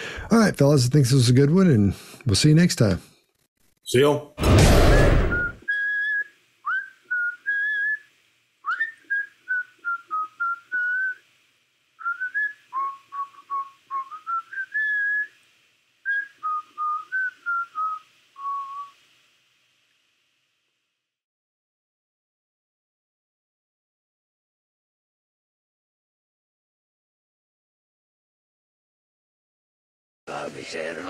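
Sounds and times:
short burst of noise: 4.4s - 5.8s
person whistling a tune: 5.3s - 8.1s, 8.7s - 11.2s, 12.0s - 15.3s.

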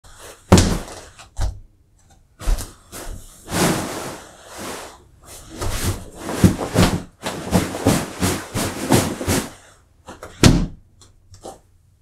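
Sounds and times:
chair rustling and knocking: 5.6s - 10.8s.

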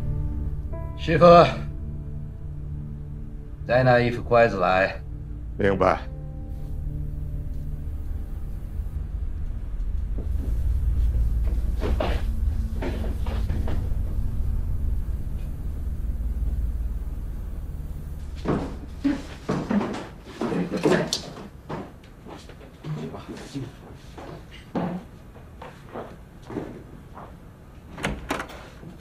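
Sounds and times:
low steady rumble: 0.0s - 19.6s
wooden doors and boxes clattering: 18.5s - 23.4s, 27.8s - 29.0s.

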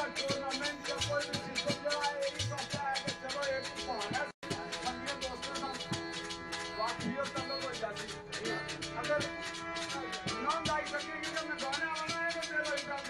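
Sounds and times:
man singing into a microphone: 0.0s - 6.0s, 6.8s - 13.0s
fast rattling percussion: 0.0s - 13.0s
harmonium drone: 0.0s - 13.0s.

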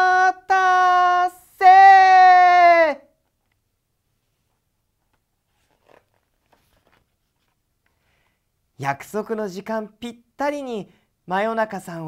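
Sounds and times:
faint rustle: 4.2s - 8.4s.

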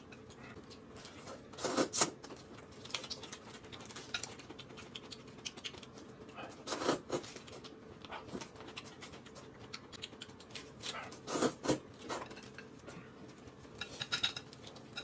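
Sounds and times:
crunchy lettuce being chewed: 0.6s - 12.2s.

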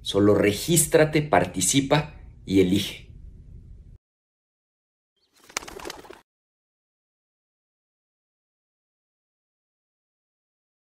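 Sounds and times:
animation click and fluttering rattle: 5.2s - 6.2s.

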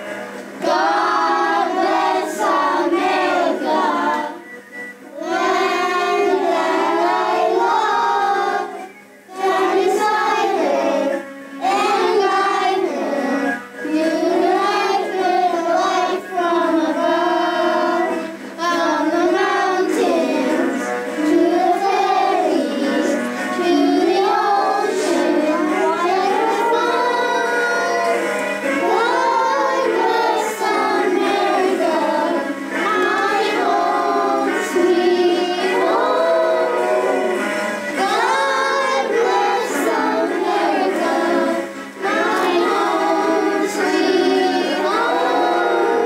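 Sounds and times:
young children singing: 0.0s - 4.5s, 5.1s - 46.0s.

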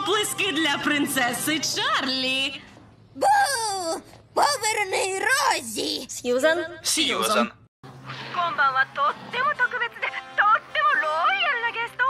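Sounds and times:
background music: 0.0s - 2.3s, 8.2s - 12.0s.

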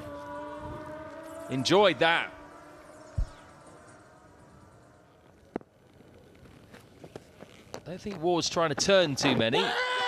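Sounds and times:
low thump: 3.2s - 3.4s.

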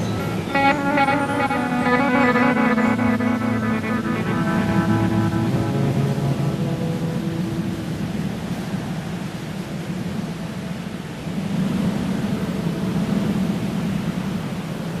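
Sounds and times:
hiss-like noise wash: 0.0s - 15.0s
held musical notes: 0.3s - 8.1s.

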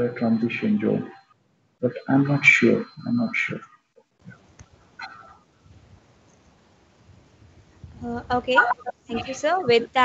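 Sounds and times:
faint pitched tones: 0.0s - 5.5s, 8.0s - 10.0s
video call background noise: 0.0s - 10.0s.

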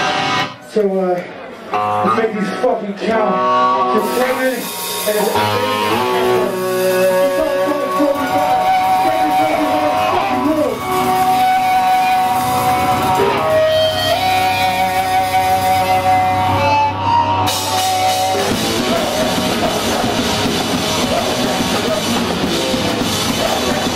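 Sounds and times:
full rock band with drums: 0.0s - 0.5s, 3.2s - 23.9s
electric guitar sustained notes: 1.7s - 23.9s.

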